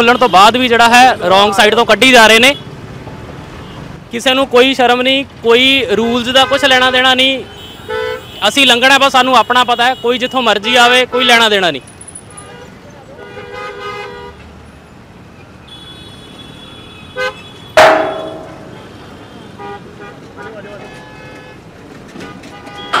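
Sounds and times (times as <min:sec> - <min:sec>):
road traffic: 0:00.0 - 0:23.0
vehicle horn toots: 0:15.7 - 0:21.6, 0:22.2 - 0:23.0
loud ringing bang: 0:17.8 - 0:19.0.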